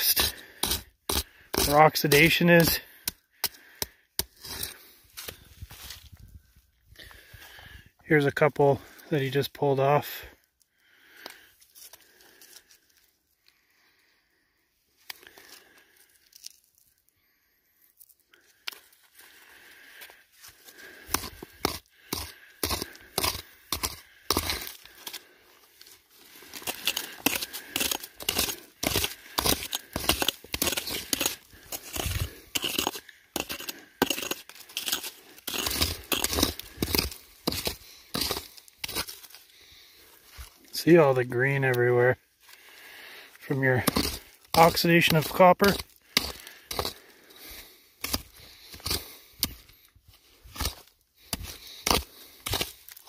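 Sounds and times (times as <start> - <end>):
rock pick scraping rock: 0.0 - 5.4, 20.7 - 39.7, 40.6 - 42.1, 43.3 - 53.0.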